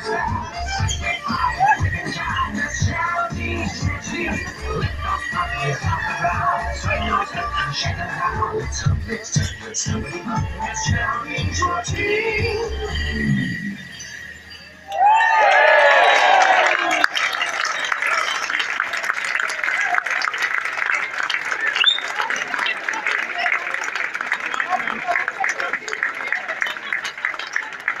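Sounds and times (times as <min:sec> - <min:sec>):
crowd chatter: 0:00.0 - 0:28.0
crowd whooping and cheering: 0:14.8 - 0:23.7
steady applause: 0:14.9 - 0:28.0.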